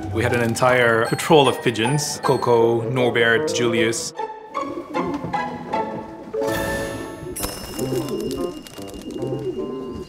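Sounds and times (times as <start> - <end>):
pigeons cooing: 7.6 - 10.0.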